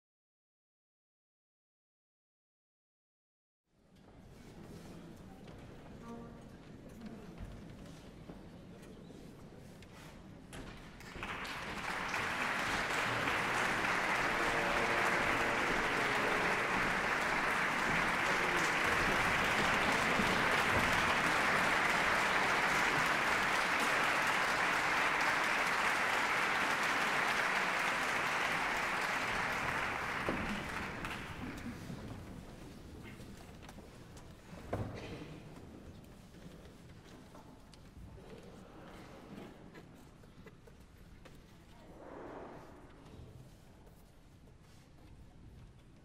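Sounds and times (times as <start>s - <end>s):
audience applauding: 11.0s - 32.2s.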